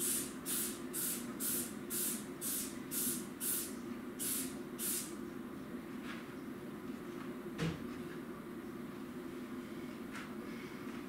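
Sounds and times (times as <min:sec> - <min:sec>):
spray bottle hissing sprays: 0:00.0 - 0:05.1.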